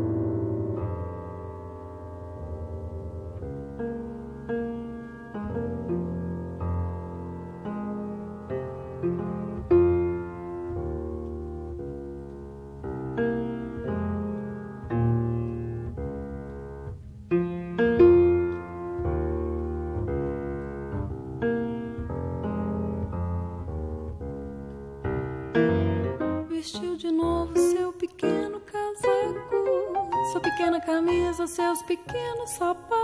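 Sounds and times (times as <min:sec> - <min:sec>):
piano playing chords: 0:00.0 - 0:33.0.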